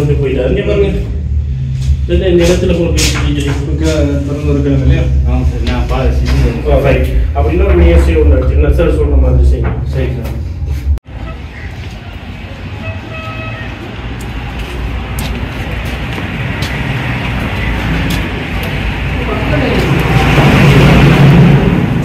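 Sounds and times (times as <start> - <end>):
street traffic rumble: 0.0 - 22.0
voices: 11.1 - 21.1
car horn toot: 12.8 - 13.8.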